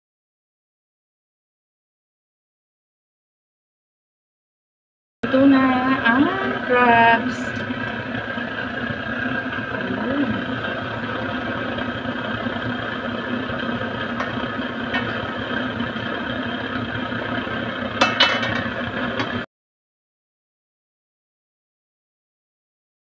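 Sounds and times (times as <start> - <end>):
water boiling hard: 5.3 - 19.4
metal lid clinking on pot: 18.0 - 18.7.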